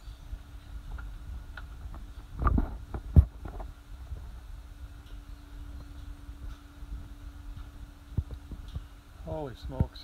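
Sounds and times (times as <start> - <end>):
wind rumble on microphone: 0.0 - 10.0
microphone handling noise: 0.9 - 4.4.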